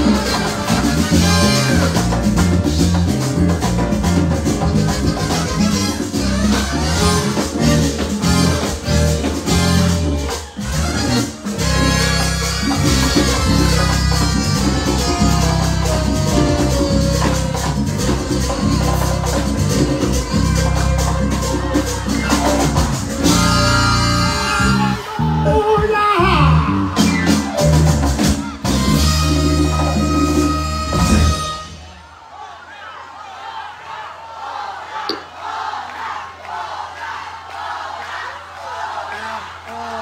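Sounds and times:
electric bass line: 0.0 - 31.8
congas: 0.0 - 32.0
latin dance band playing: 0.0 - 32.5.

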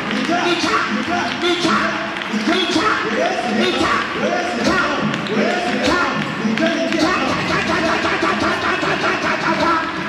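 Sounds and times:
congregation clapping: 0.0 - 10.0
voices praying aloud: 0.0 - 10.0.

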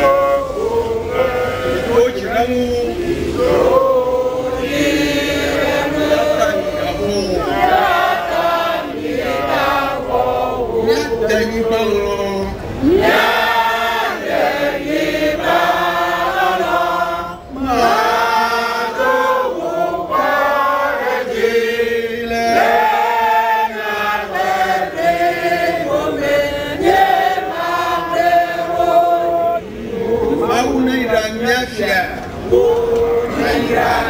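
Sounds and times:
group chanting a song: 0.0 - 2.2, 2.9 - 11.2, 12.8 - 30.6, 32.7 - 34.0.

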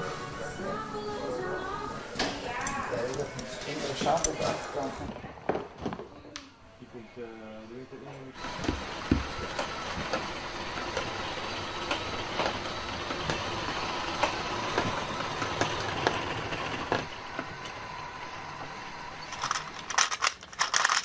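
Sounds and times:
motors and plastic gears whirring: 8.4 - 21.0
rattling: 19.2 - 21.0.

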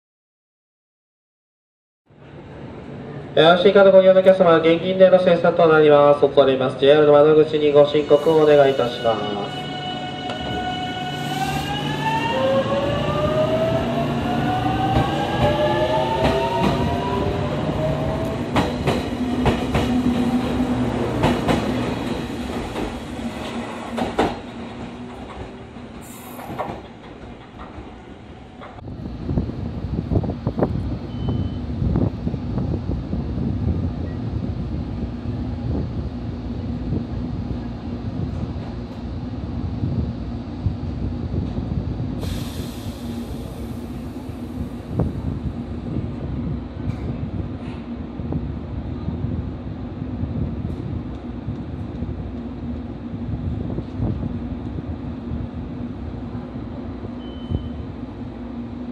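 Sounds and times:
standing train low hum: 2.1 - 58.9.

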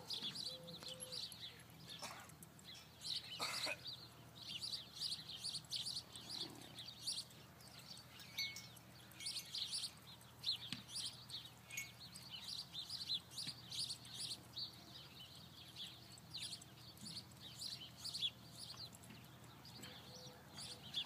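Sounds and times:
small birds chirping: 0.0 - 21.0.

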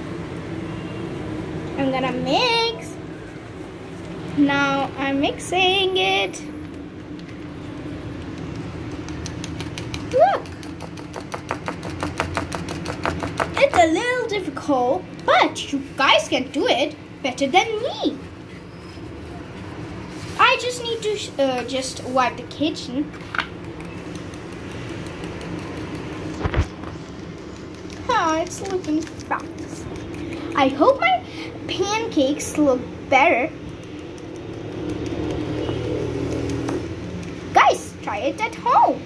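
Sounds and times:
low background hum: 0.0 - 39.0
whisk clicking against bowl: 8.1 - 13.8, 23.4 - 30.8, 33.6 - 37.4.

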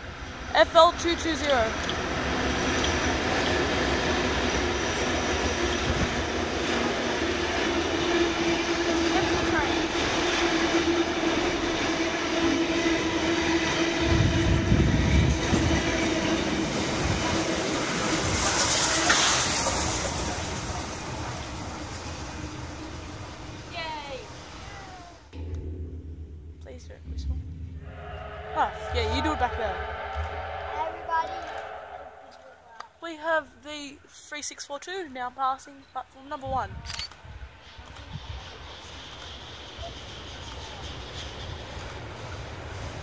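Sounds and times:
steam locomotive hiss: 0.0 - 25.3, 37.3 - 43.0
train wheels rumbling on rail: 0.0 - 35.6, 36.2 - 43.0
diesel locomotive engine: 0.0 - 43.0.

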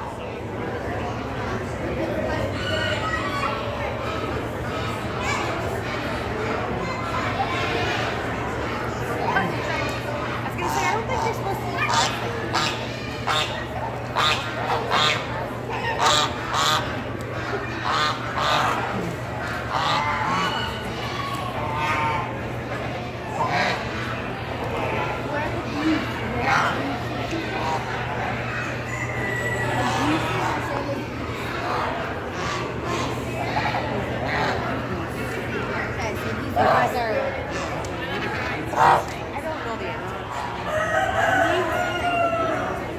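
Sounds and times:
steady low hum: 0.0 - 40.5
geese honking: 11.8 - 20.9, 23.3 - 24.0
rooster crowing: 28.9 - 30.0, 40.7 - 42.9.

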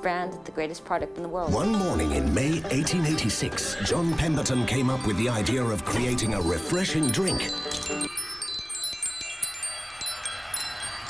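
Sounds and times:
high-pitched bell chimes: 1.5 - 11.0.

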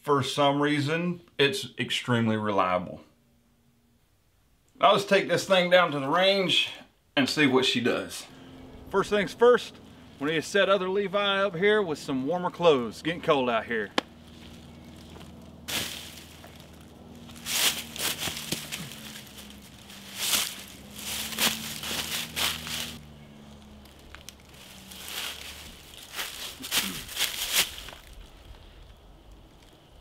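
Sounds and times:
dry leaves crunching underfoot: 13.3 - 30.0
jacket fabric rustling: 14.1 - 23.0, 24.3 - 28.2.

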